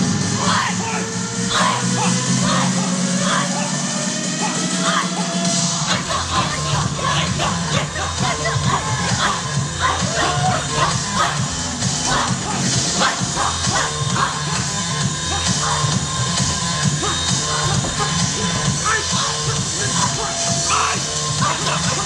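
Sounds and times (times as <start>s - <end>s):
loud music with bass beat: 0.0s - 22.0s
performers shouting: 0.3s - 22.0s.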